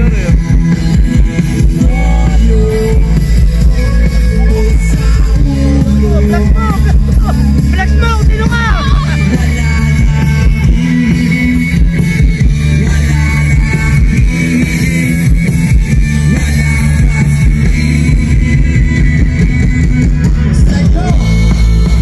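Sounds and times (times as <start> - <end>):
live rock band: 0.0 - 22.0.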